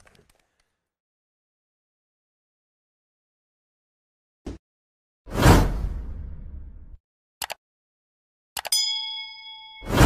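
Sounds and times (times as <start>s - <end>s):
notification bell ding: 8.7s - 10.0s.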